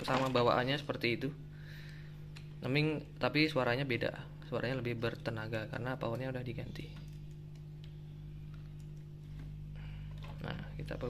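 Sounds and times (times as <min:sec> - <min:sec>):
amplifier hum through speaker: 0:00.0 - 0:11.0.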